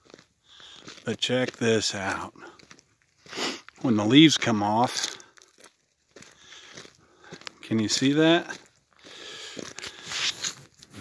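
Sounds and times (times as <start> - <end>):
faint crunching and rustling: 0.0 - 11.0.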